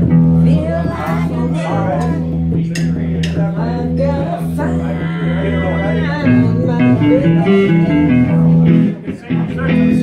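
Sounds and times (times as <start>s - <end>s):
electric guitars: 0.0s - 10.0s
live band playing: 0.0s - 10.0s.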